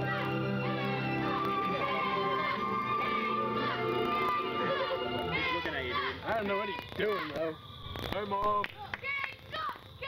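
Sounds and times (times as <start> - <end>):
music with held notes: 0.0 - 5.7
high-pitched swooping voices: 0.0 - 7.6.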